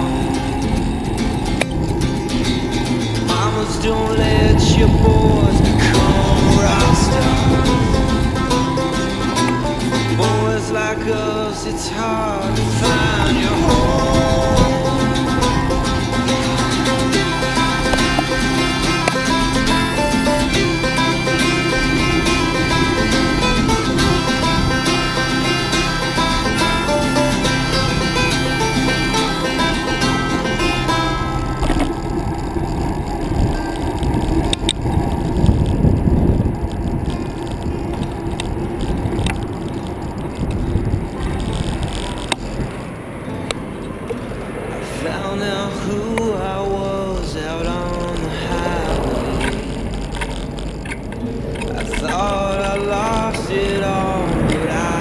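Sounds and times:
instrumental country music: 0.0 - 55.0.

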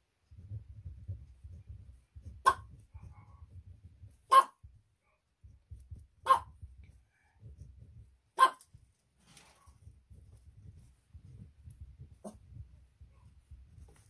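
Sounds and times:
dog barking: 2.4 - 3.2, 4.3 - 4.7, 6.2 - 6.6, 8.4 - 8.7.

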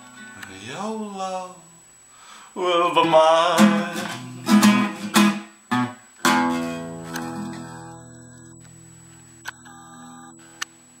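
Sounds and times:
acoustic guitar chord ringing: 2.7 - 11.0.

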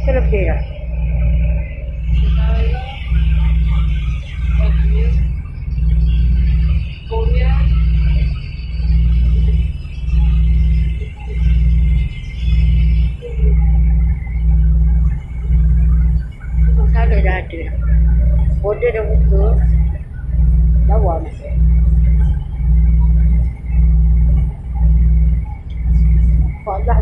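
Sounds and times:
ferry engines droning: 0.0 - 27.0.

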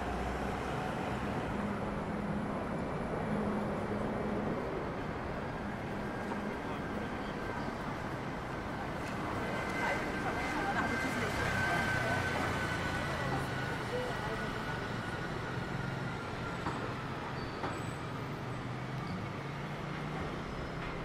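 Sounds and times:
buses and cars passing: 0.0 - 21.0
road noise: 0.0 - 21.0.

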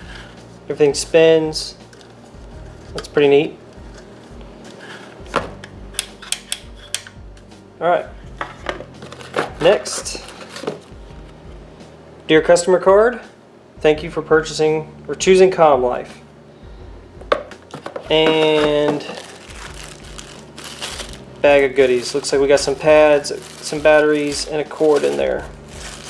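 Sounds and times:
faint plastic handling rustle: 8.5 - 11.2, 17.7 - 26.0.

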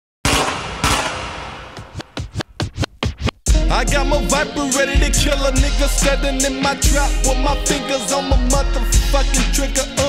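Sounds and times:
echoing gunshot sound effects: 0.2 - 2.2.

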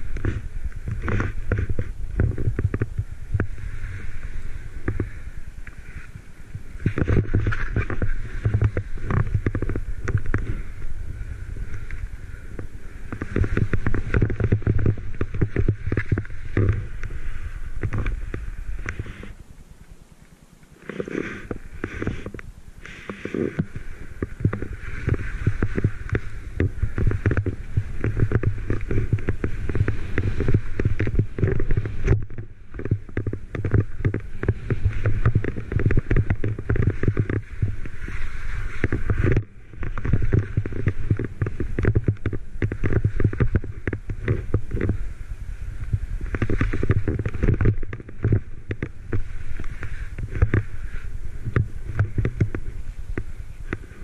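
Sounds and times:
skis rushing through powder snow: 0.0 - 20.0, 20.7 - 54.0
wind rumbling on microphone: 0.0 - 54.0.

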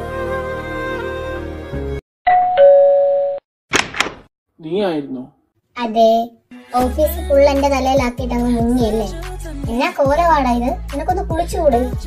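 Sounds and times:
two-tone doorbell chime: 2.3 - 3.4.

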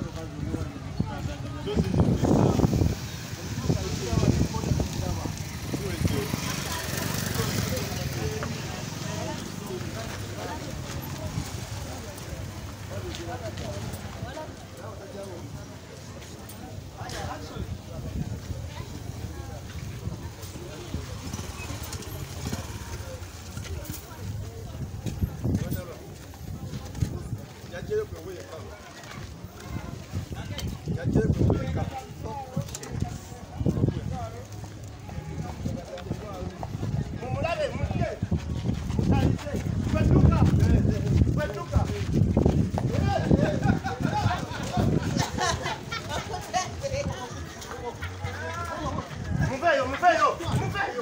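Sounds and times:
people talking: 0.0 - 51.0
street noise: 0.0 - 51.0
motorcycle engines running: 0.1 - 14.2, 18.3 - 26.5.

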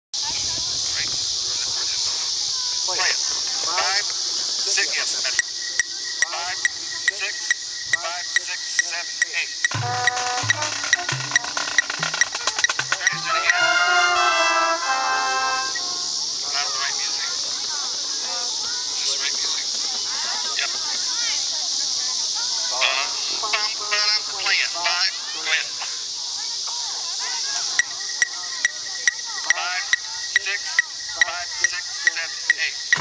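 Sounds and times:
steady high hiss: 0.2 - 33.0
voices: 0.2 - 33.0
sharp clicks keeping time: 5.3 - 13.6, 27.6 - 33.0
marching band music: 8.3 - 16.9.

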